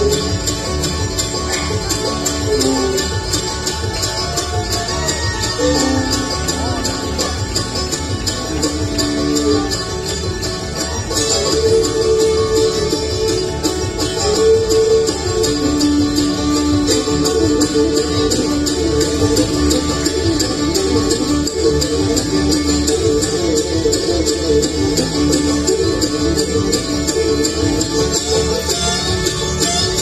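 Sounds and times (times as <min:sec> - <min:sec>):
fiddle melody: 0:00.0 - 0:30.0
guitar: 0:00.0 - 0:30.0
quick banjo picking: 0:00.0 - 0:30.0
upright bass: 0:00.0 - 0:30.0.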